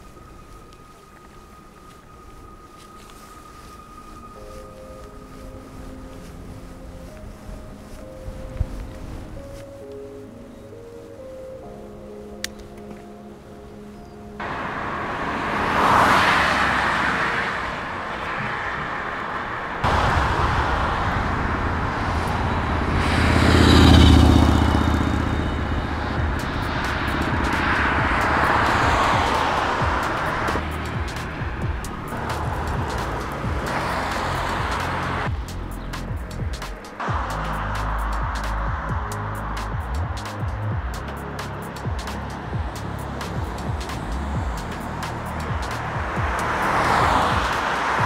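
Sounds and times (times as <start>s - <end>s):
background music: 0.0s - 17.4s, 23.7s - 48.0s
cars passing: 0.0s - 48.0s
road and wind noise: 0.0s - 48.0s.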